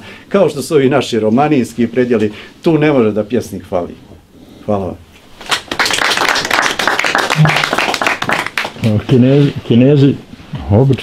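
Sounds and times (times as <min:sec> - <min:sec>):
small audience applauding: 0:05.4 - 0:09.0.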